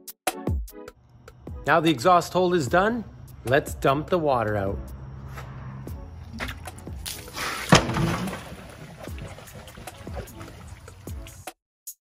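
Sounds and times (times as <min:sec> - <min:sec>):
background music: 0:00.0 - 0:11.6
water sloshing and pouring: 0:06.2 - 0:11.5.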